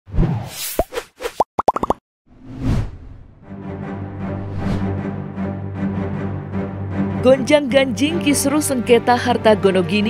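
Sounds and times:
cartoon pops rising in pitch: 0:01.6 - 0:02.0.

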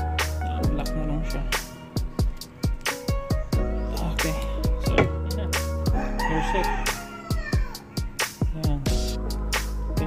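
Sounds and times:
background music with beat: 0:00.0 - 0:10.0
rooster crowing: 0:05.8 - 0:08.1.

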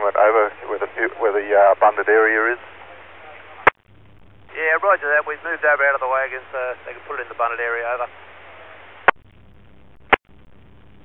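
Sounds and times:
radio scanner hiss: 0:00.0 - 0:09.2.

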